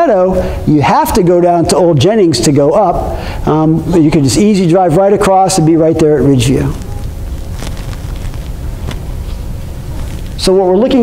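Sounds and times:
low rumble of room noise: 0.0s - 11.0s.

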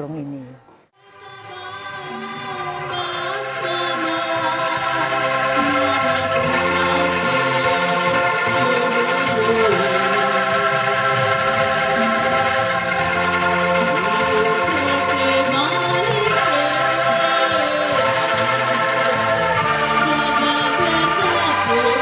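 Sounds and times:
person singing: 0.0s - 22.0s
bamboo rattles shaken in chords: 1.5s - 22.0s.

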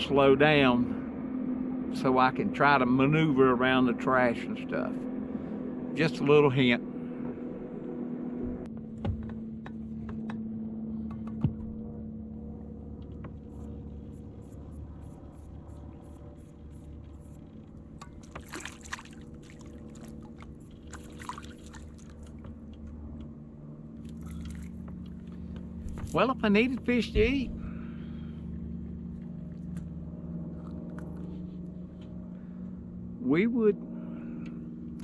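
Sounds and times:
electric trolling motor hum: 0.0s - 35.0s
fish splashing at surface: 18.3s - 22.3s.

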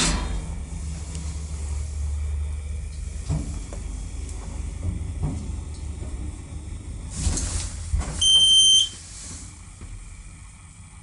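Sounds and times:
lift arrival beep: 8.2s - 9.0s.

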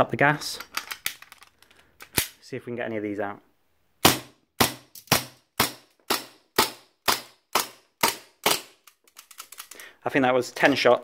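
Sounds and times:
airsoft pistol shots: 4.0s - 8.7s.

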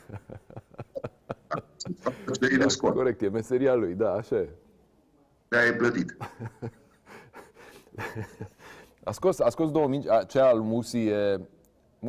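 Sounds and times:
man murmuring: 0.0s - 3.0s
man breathing: 7.1s - 9.0s.

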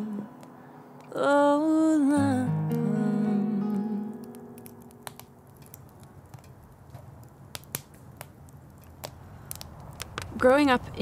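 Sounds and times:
acoustic guitar chord: 0.0s - 5.4s
wood fire crackling and popping: 0.0s - 11.0s.

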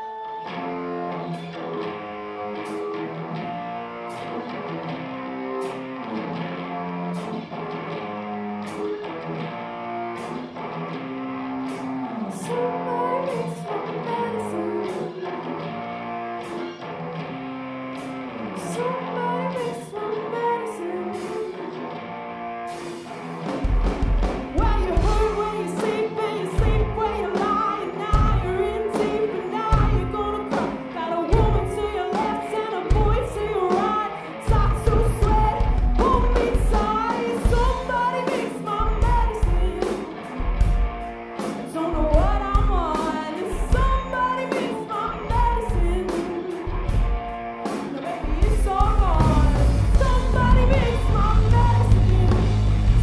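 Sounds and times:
guitar riff: 0.0s - 53.0s
drum kit: 2.6s - 7.9s, 8.6s - 10.9s, 11.5s - 12.1s, 22.7s - 53.0s
person singing: 12.0s - 15.7s, 18.3s - 21.8s, 24.4s - 40.5s, 41.4s - 53.0s.

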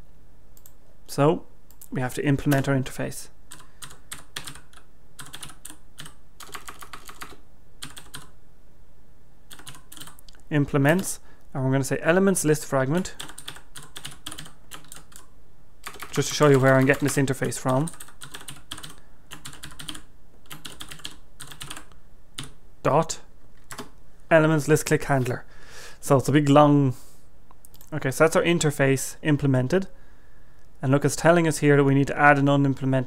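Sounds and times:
typing on a keyboard: 3.5s - 8.3s, 9.5s - 10.2s, 13.2s - 22.6s, 23.7s - 23.9s.

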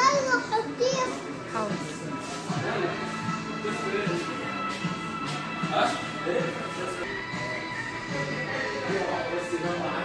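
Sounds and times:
child talking: 0.0s - 1.4s
background music: 0.0s - 10.0s.

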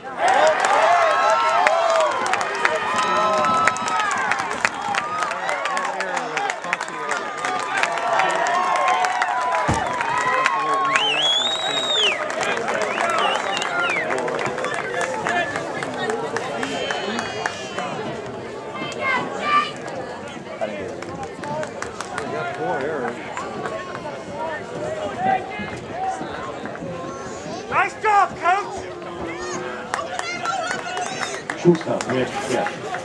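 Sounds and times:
crowd chattering and calling out: 0.0s - 33.0s.

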